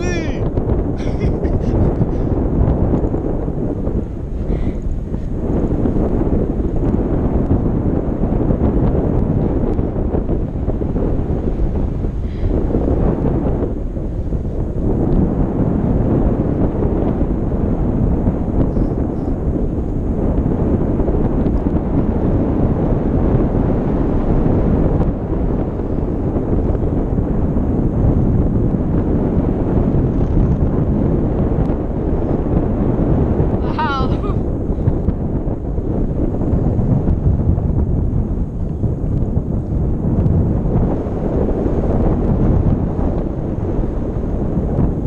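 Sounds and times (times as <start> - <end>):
wind rushing over microphone: 0.0 - 45.0.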